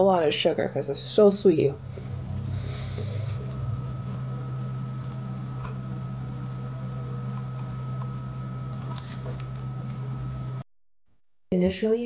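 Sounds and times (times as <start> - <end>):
low hum: 0.0 - 11.5.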